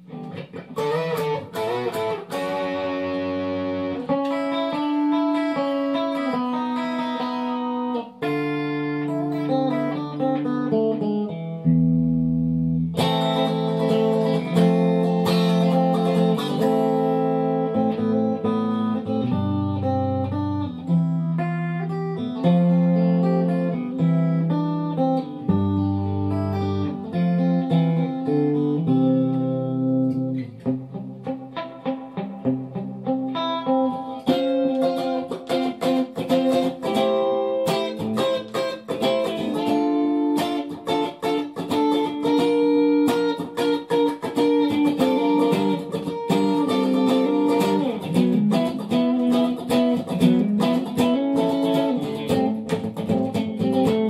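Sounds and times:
electric guitar riffs and chords: 0.0 - 54.0.

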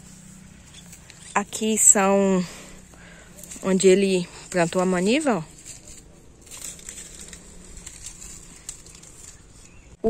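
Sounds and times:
faint rustling: 0.0 - 10.0.

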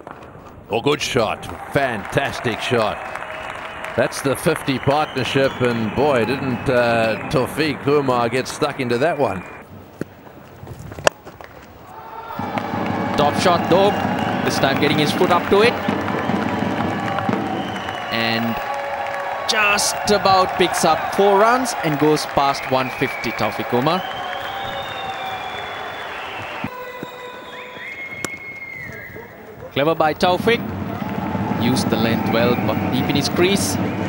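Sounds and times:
stadium crowd noise: 0.0 - 9.6, 11.8 - 34.0
cricket bat striking ball: 12.4 - 18.1
long steady pitched tones: 12.4 - 34.0.

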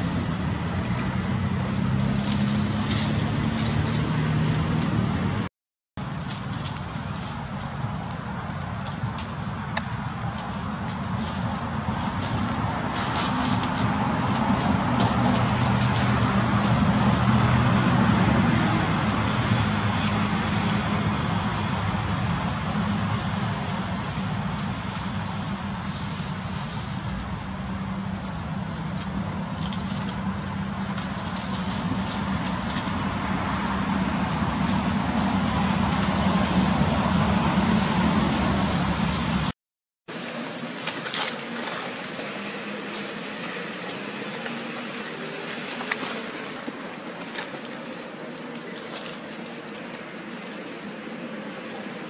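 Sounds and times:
vehicle engine running: 0.0 - 39.5
road traffic noise: 0.0 - 52.0.

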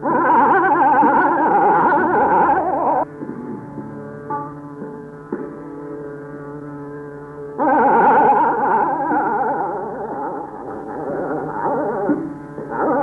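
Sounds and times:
tanpura drone: 0.0 - 13.0.

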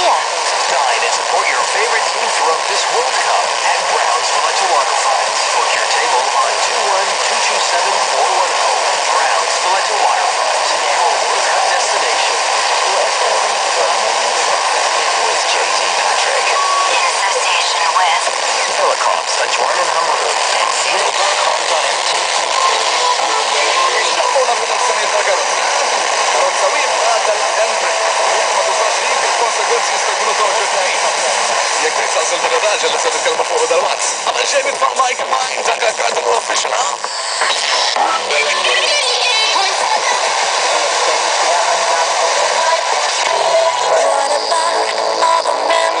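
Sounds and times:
faint wavering radio voice: 0.0 - 46.0
radio hiss: 0.0 - 46.0.

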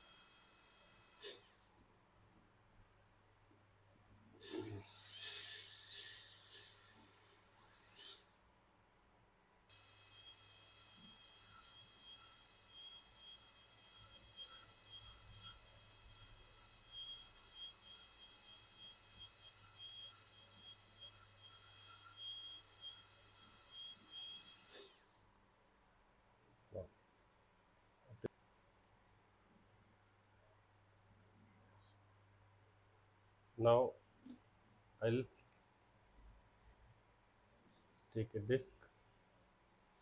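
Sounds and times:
dental drill hissing: 0.0 - 1.7, 4.4 - 8.4, 9.7 - 25.2
dental drill whining: 0.0 - 1.7, 4.4 - 8.4, 9.7 - 25.2.

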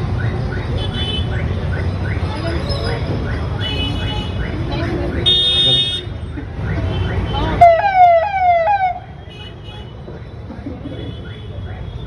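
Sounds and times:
road traffic rumbling: 0.0 - 12.0
siren-style vehicle horn wailing: 5.3 - 9.1.

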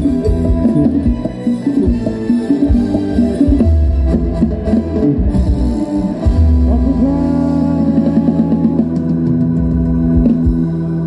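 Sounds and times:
heavy bass line: 0.0 - 11.0
live band dance music: 0.0 - 11.0.

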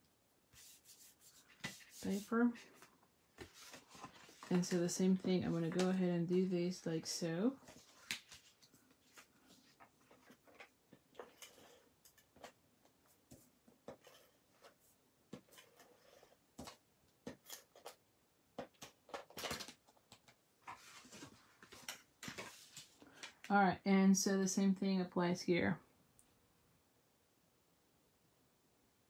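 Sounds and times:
paper handling taps and rustles: 1.4 - 6.2, 7.6 - 11.4, 18.6 - 23.5.

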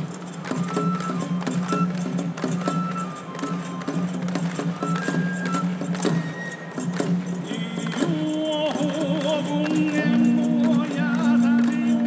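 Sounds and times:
drum beats: 0.0 - 12.0.

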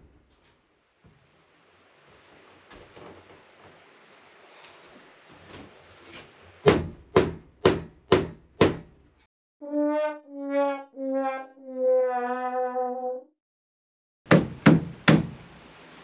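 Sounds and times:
sad trombone sound effect: 9.6 - 13.3.

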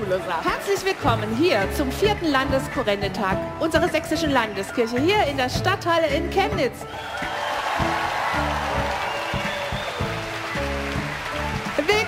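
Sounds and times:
audience applauding: 0.0 - 1.9, 6.9 - 12.0
background music with bass line: 1.0 - 12.0.

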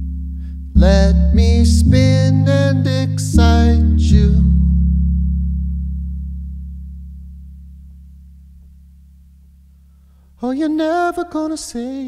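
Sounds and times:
low synthesizer chord: 0.0 - 10.2.

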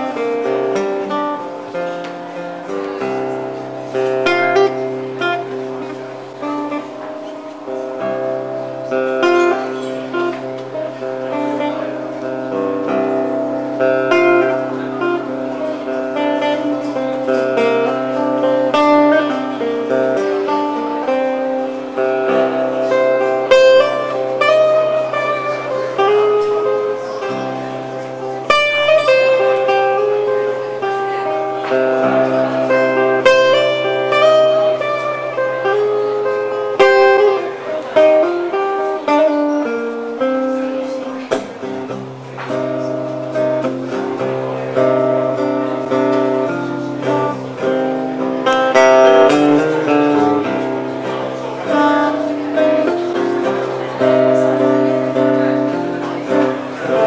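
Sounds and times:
acoustic guitar picked notes: 0.0 - 57.0.

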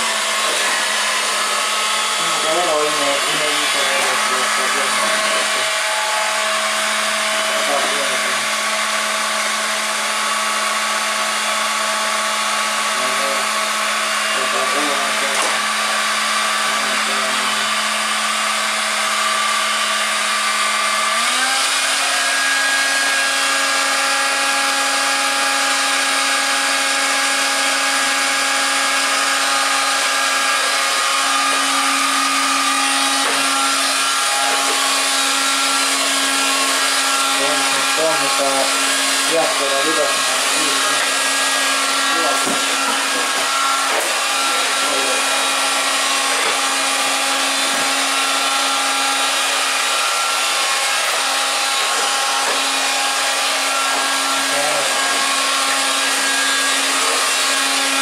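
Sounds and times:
vacuum cleaner motor whining: 0.0 - 58.0.

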